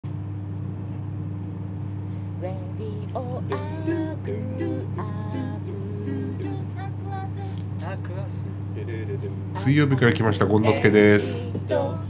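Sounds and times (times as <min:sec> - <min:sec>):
steady low hum: 0:00.0 - 0:12.0
thin constant high tone: 0:02.5 - 0:12.0.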